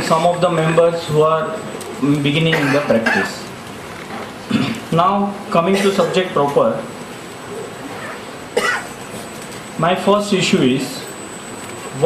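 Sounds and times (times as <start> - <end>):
man coughing: 2.4 - 3.4, 4.5 - 4.8, 5.7 - 6.4, 8.6 - 9.0.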